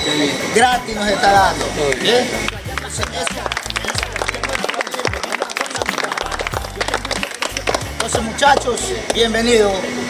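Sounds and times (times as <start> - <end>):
background music with bass line: 0.0 - 9.8
people clapping: 1.5 - 9.2.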